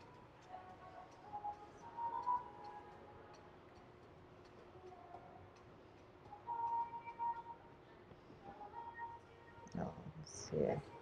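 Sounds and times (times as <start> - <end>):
light ticking beat: 0.0 - 9.9
faint background music: 0.0 - 11.0.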